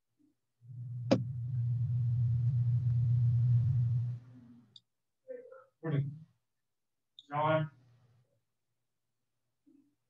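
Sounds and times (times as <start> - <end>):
steady low hum: 0.6 - 4.7.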